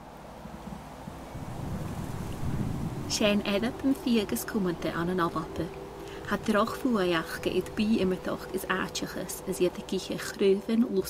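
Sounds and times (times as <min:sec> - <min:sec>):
wind buffeting microphone: 0:00.0 - 0:10.4.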